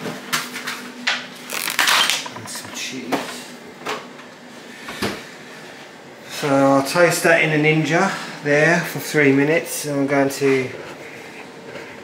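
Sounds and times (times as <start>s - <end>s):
plastic packets rustling: 1.4s - 2.3s.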